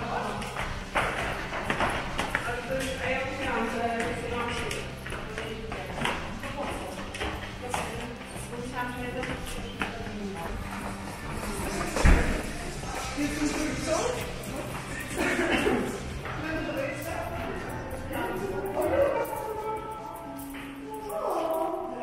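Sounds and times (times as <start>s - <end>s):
footsteps climbing stairs: 0.0s - 21.5s
women chatting and calling out: 2.3s - 12.4s, 13.1s - 22.0s.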